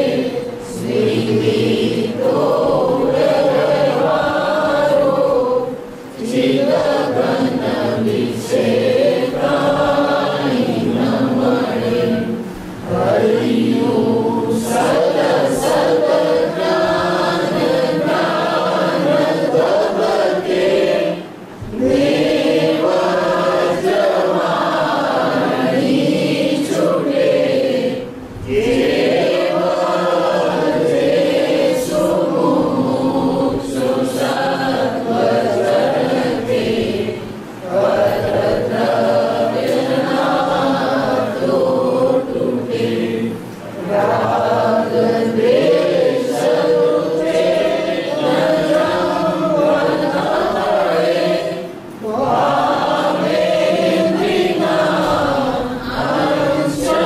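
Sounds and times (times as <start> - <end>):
voices chanting melodically: 0.0 - 57.0.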